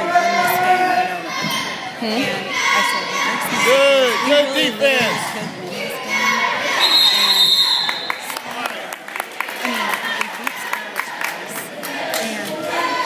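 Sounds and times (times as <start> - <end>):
spectators' voices echoing: 0.0 - 13.0.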